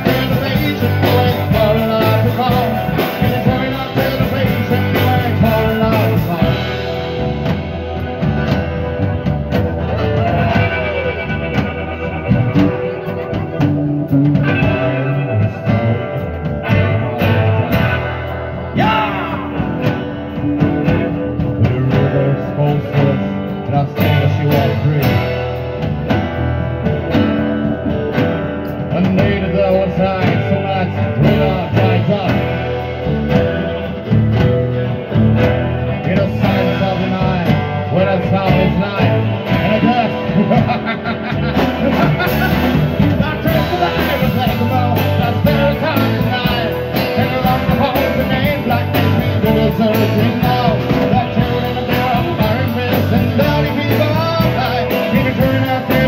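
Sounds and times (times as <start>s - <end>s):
guitar notes bending: 0.0s - 56.0s
rock band playing: 0.0s - 56.0s.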